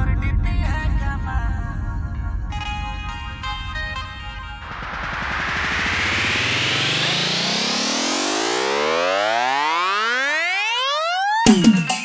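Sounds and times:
rising pitch sweep: 0:02.5 - 0:12.0.

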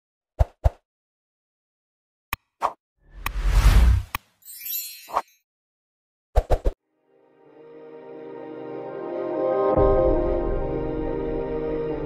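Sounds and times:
whoosh: 0:03.2 - 0:04.1.

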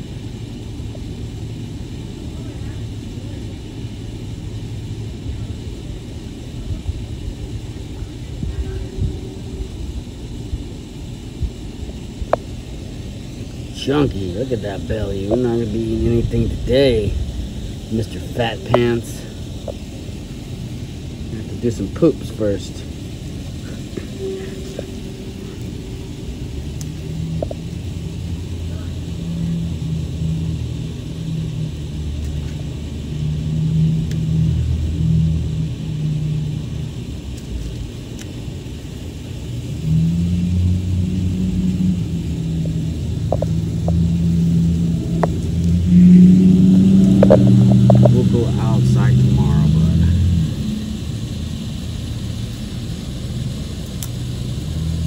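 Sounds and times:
low motor rumble: 0:00.0 - 0:55.0.

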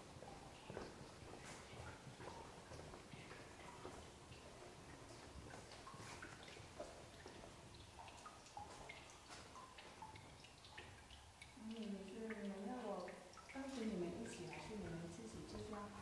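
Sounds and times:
low hum of cave ambience: 0:00.0 - 0:16.0
water drips plinking into pools: 0:00.0 - 0:16.0.

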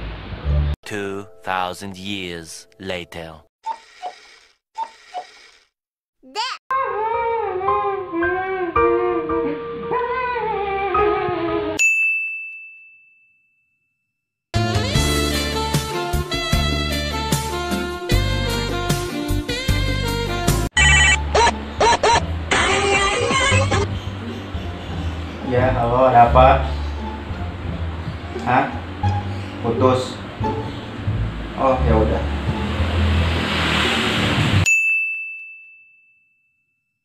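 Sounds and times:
high ding: 0:11.8 - 0:14.0, 0:34.6 - 0:37.0
jazzy music with horns: 0:14.6 - 0:23.9
mobile phone ringtone: 0:20.8 - 0:21.3.

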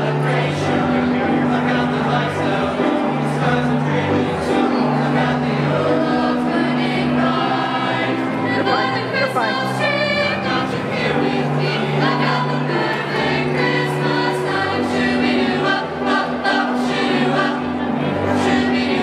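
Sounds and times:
choir singing: 0:00.0 - 0:19.0
musical accompaniment: 0:00.0 - 0:19.0.

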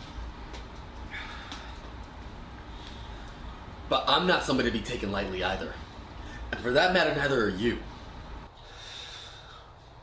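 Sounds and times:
low room hum: 0:00.0 - 0:10.0
man exhaling: 0:01.1 - 0:01.9, 0:08.6 - 0:10.0.

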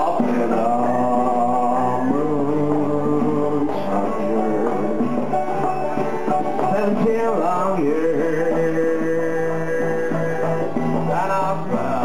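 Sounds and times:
acoustic string band playing: 0:00.0 - 0:12.0.

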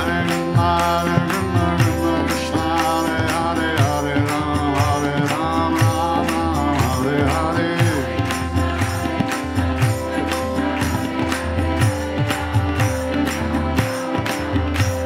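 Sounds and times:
chanted melody: 0:00.0 - 0:15.0
harmonium chords: 0:00.0 - 0:15.0
tabla beat: 0:00.0 - 0:15.0.

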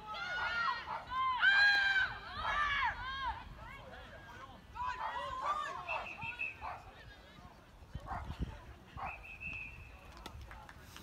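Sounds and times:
referee's whistle: 0:05.8 - 0:06.7, 0:09.0 - 0:10.0.

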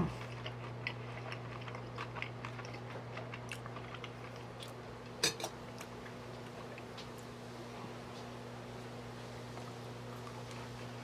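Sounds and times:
steady low hum: 0:00.0 - 0:11.0
chewing mouth clicks: 0:00.1 - 0:04.8.

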